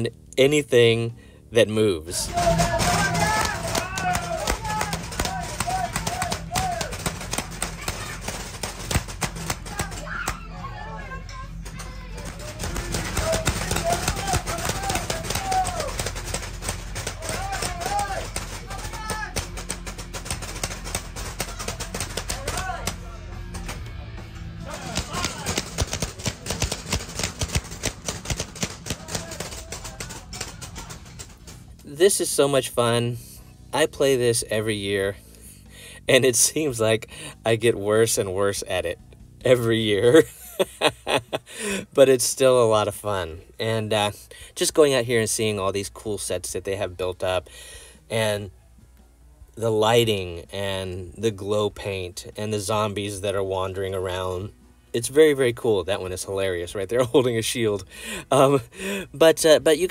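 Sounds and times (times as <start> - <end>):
paintball guns firing: 2.3 - 10.4, 12.2 - 23.8, 24.7 - 31.7.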